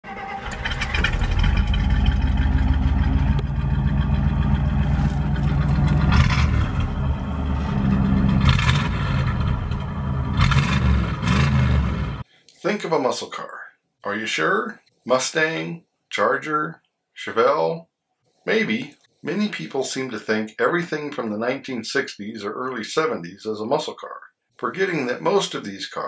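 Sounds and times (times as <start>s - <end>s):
car engine revving: 0.0s - 12.2s.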